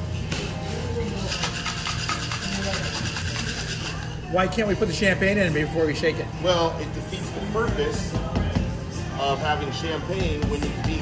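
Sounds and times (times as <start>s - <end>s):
background music: 0.0s - 11.0s
ice rattling in cocktail shaker: 1.2s - 4.1s.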